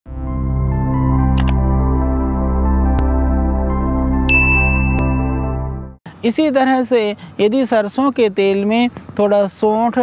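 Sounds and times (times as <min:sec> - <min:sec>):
ambient synth music: 0:00.1 - 0:06.0
bell-like notification ding: 0:04.3 - 0:05.6.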